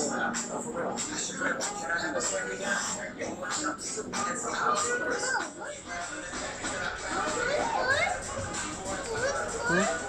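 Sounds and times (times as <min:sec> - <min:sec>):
background music: 0:00.0 - 0:10.0
child speaking: 0:07.4 - 0:08.2, 0:08.9 - 0:10.0.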